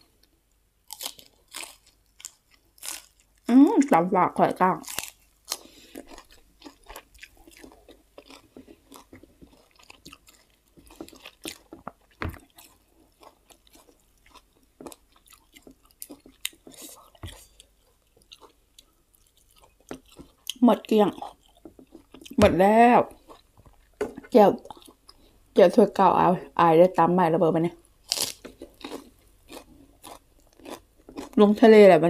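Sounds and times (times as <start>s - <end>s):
person chewing and lip-smacking: 0.9s - 3.5s, 4.8s - 22.4s, 23.1s - 25.3s, 28.0s - 31.4s.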